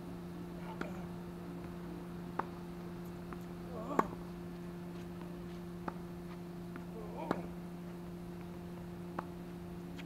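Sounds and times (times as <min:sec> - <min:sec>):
steady low hum: 0:00.0 - 0:10.0
tennis ball struck: 0:01.6 - 0:02.6, 0:05.2 - 0:06.1, 0:06.7 - 0:07.6, 0:09.1 - 0:09.4.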